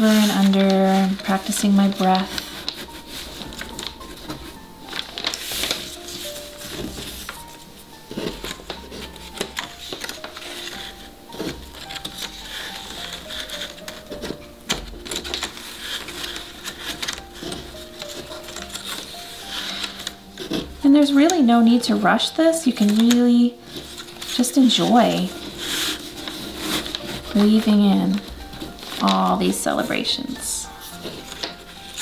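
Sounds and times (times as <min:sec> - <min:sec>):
paper strips rustling and tapping: 0:00.0 - 0:32.0
soft background music: 0:00.0 - 0:32.0.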